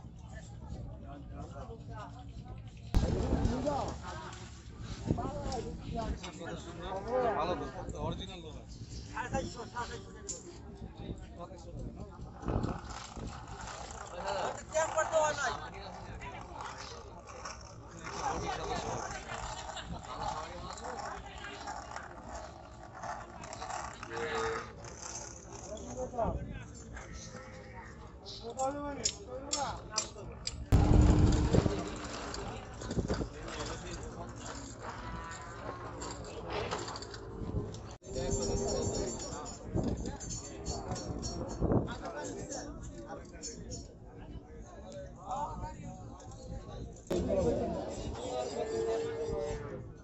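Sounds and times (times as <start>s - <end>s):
background chatter: 0.0s - 50.0s.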